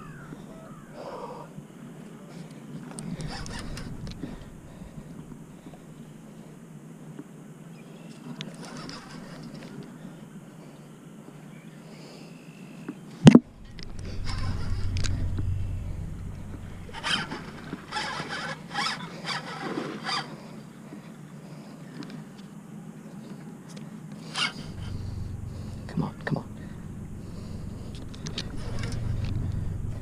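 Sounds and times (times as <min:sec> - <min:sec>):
low rumble of handling: 0:01.8 - 0:06.6, 0:13.4 - 0:19.0, 0:24.4 - 0:30.0
fishing reel straining: 0:02.9 - 0:06.0, 0:08.5 - 0:09.9, 0:13.5 - 0:20.4, 0:24.2 - 0:30.0.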